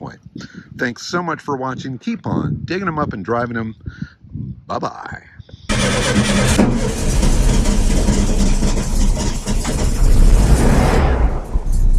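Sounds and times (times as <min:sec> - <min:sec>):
car engine rumbling: 0:05.7 - 0:11.9.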